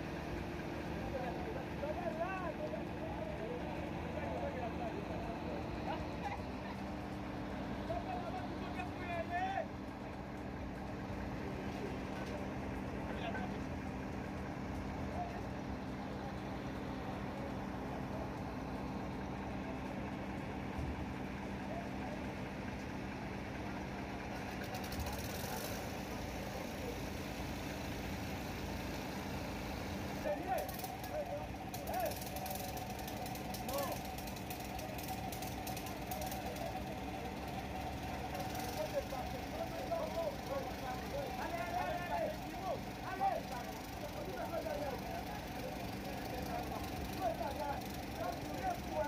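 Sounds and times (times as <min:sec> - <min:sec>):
excavator diesel engine idling: 0:00.0 - 0:49.0
noisy background: 0:00.0 - 0:49.0
faint voices: 0:00.2 - 0:28.0, 0:30.1 - 0:49.0.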